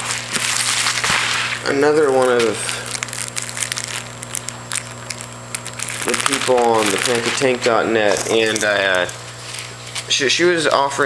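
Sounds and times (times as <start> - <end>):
plastic bag crinkling: 0.0 - 10.1.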